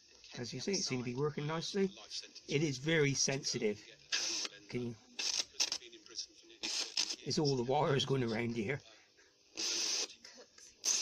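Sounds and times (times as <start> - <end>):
radio speaker hiss: 0.0 - 11.0.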